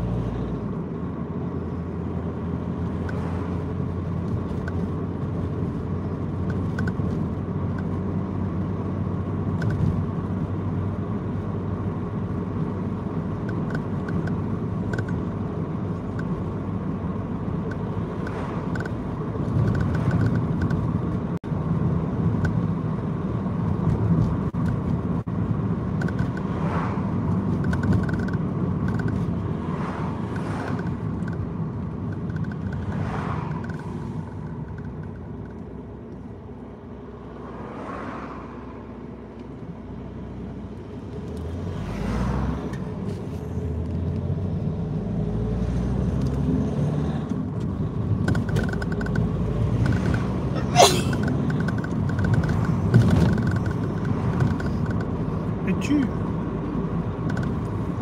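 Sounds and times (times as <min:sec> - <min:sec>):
car engine and tyre rumble: 0:00.0 - 0:58.0
vehicles swishing past: 0:02.2 - 0:07.3, 0:17.2 - 0:21.0, 0:25.9 - 0:36.2, 0:36.9 - 0:58.0.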